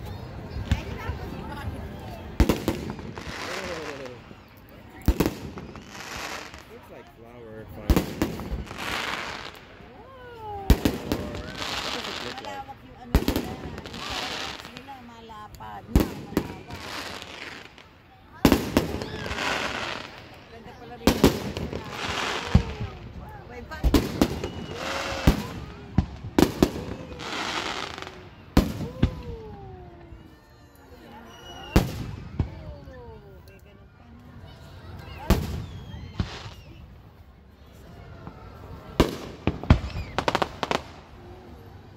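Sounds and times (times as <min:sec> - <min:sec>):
people's voices: 0:00.0 - 0:41.9
fireworks bangs: 0:00.6 - 0:07.0, 0:07.7 - 0:09.8, 0:10.4 - 0:29.8, 0:31.6 - 0:32.8, 0:35.1 - 0:36.8, 0:38.3 - 0:41.2
firework exploding with loud bang: 0:02.4 - 0:04.2, 0:18.4 - 0:20.2, 0:23.8 - 0:29.4, 0:31.6 - 0:32.7, 0:35.2 - 0:36.8, 0:39.0 - 0:41.1.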